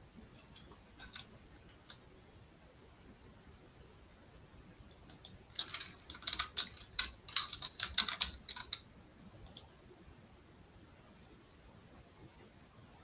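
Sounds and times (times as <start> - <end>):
typing on computer keyboard: 0.6 - 2.0, 4.8 - 9.7.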